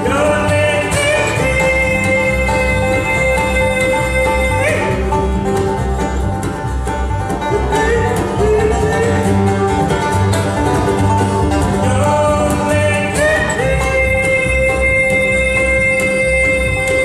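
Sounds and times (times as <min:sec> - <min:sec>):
acoustic guitar: 0:00.0 - 0:17.0
banjo: 0:00.0 - 0:17.0
fiddle gliding notes: 0:00.0 - 0:17.0
upright bass plucking: 0:00.0 - 0:17.0.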